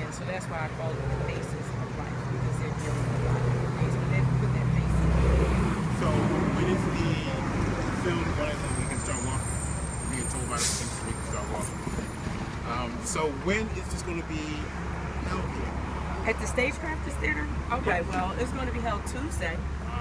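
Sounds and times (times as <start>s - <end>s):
heavy vehicle engine rumble: 0.0s - 20.0s
street traffic: 0.0s - 20.0s.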